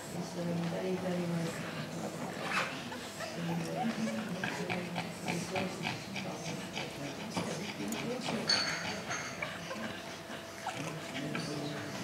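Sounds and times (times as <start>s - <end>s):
quiet murmured voices: 0.0s - 12.0s
dogs: 2.4s - 12.0s.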